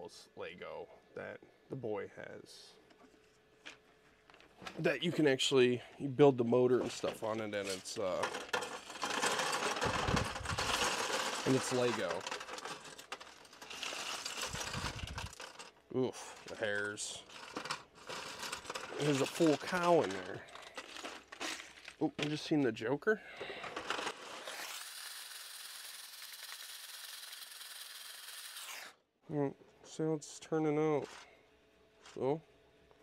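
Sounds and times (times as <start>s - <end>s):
plastic trays scraping: 6.8s - 22.4s, 23.4s - 24.6s
plastic toy bricks clattering: 7.6s - 22.4s, 23.4s - 24.6s.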